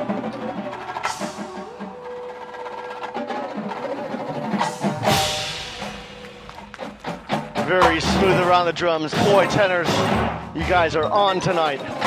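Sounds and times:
marching drums: 0:00.0 - 0:12.0
cymbal crashes: 0:04.8 - 0:06.5
mallet keyboard notes: 0:07.6 - 0:12.0.

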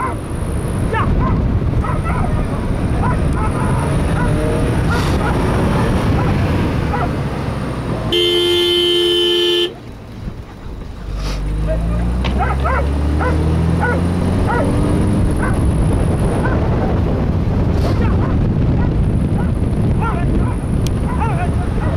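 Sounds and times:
vehicle rumble from inside cabin: 0:00.0 - 0:21.9
car horn blast: 0:08.1 - 0:09.8.

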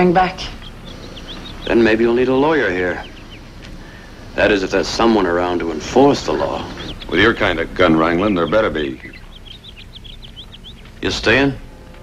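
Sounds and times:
faint low hum: 0:00.0 - 0:12.0
small bird chirping: 0:00.0 - 0:12.0.

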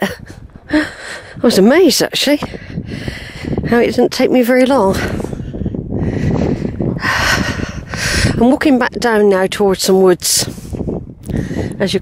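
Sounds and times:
wind rumbling on microphone: 0:00.0 - 0:12.0
person breathing out hard: 0:02.6 - 0:03.6, 0:05.0 - 0:08.4.

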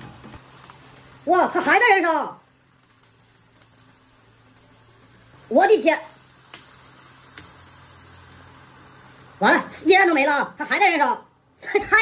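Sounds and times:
liquid nitrogen hissing: 0:00.0 - 0:12.0.

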